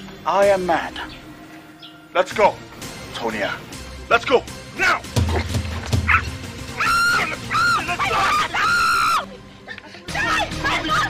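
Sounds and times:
background music: 0.0 - 11.0
woman screaming: 6.1 - 9.3, 10.1 - 11.0.

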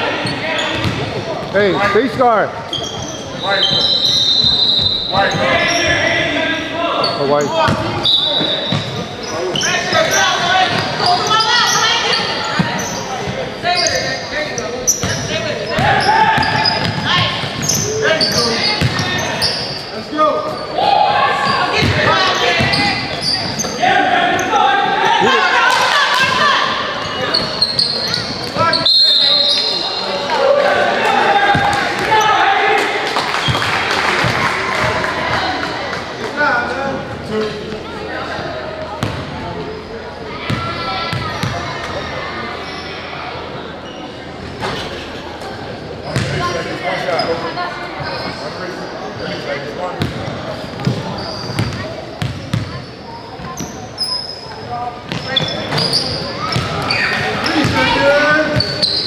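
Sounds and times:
people calling and shouting: 0.0 - 59.0
basketball bouncing on court: 0.7 - 1.2, 18.8 - 19.1, 39.0 - 39.3, 46.2 - 46.4, 50.0 - 52.8.

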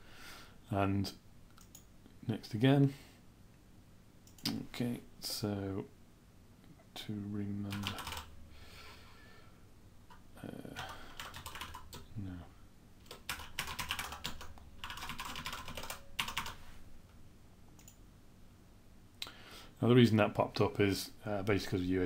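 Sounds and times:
computer keyboard typing: 7.7 - 8.3, 10.7 - 12.1, 13.1 - 16.6.

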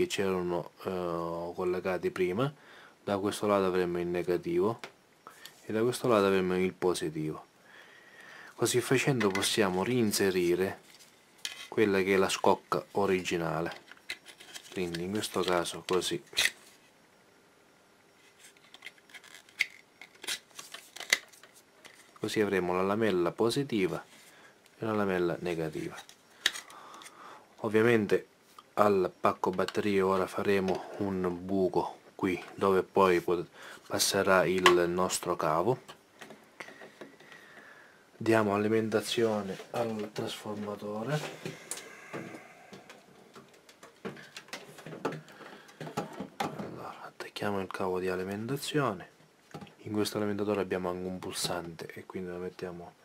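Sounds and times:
plastic rubbing and rustling: 9.2 - 17.0, 18.2 - 22.3
clicks and knocks of handling: 42.8 - 46.7.

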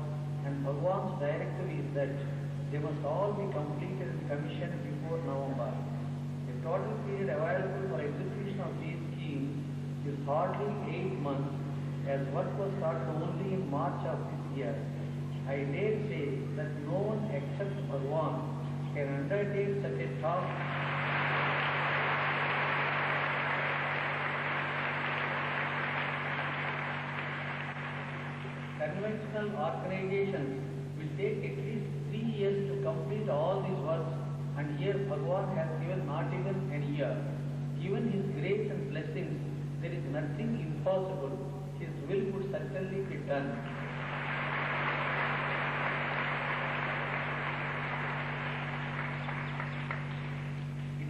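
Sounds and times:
low mains hum: 0.0 - 51.0
tape hiss: 0.0 - 51.0.

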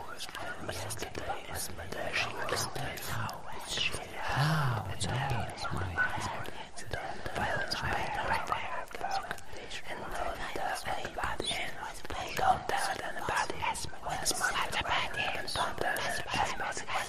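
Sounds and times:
breathy whispered voices: 0.0 - 17.0.

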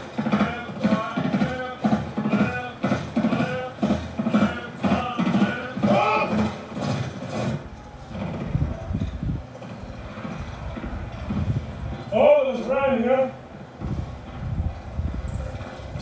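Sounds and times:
low rumbling: 13.4 - 16.0.

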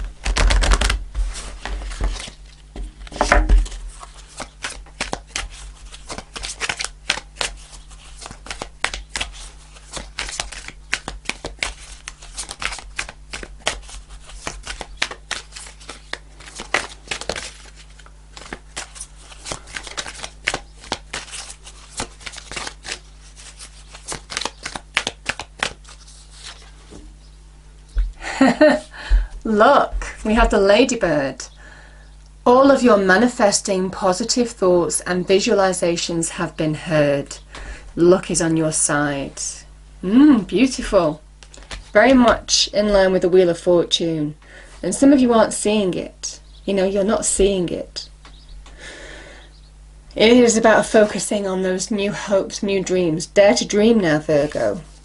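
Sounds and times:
cards being shuffled: 0.0 - 27.0, 40.8 - 42.5.

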